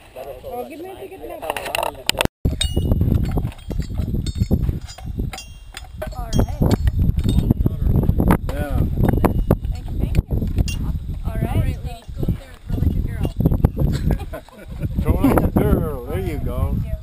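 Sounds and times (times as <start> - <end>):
wind buffeting microphone: 2.0 - 17.0
sharp clicks and clinks: 2.5 - 7.6.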